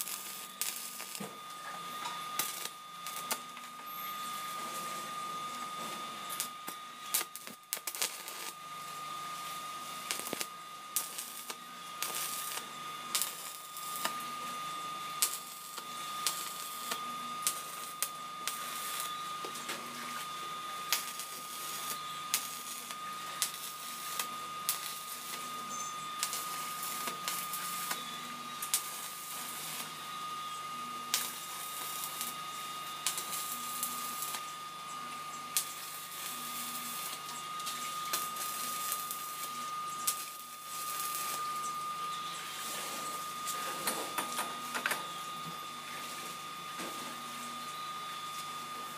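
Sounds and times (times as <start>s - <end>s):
high-pitched whine: 0.0s - 48.9s
welding arc crackling: 0.0s - 48.9s.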